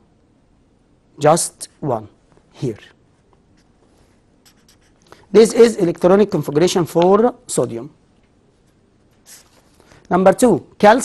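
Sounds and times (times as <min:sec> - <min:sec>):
marker pen scratching on paper: 0:03.2 - 0:05.2.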